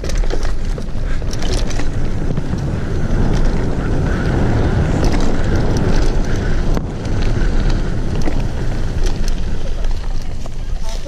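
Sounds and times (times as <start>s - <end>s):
light clicks from bike: 0.0s - 11.0s
wind buffeting microphone: 0.0s - 11.0s.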